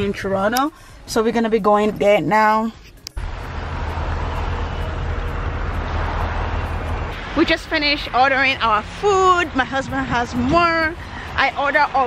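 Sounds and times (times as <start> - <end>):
traffic rumble with hiss: 3.2 - 12.0.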